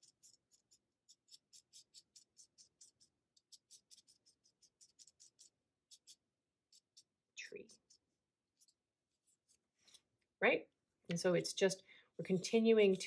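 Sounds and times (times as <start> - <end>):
marker scratching on paper: 0.0 - 10.0.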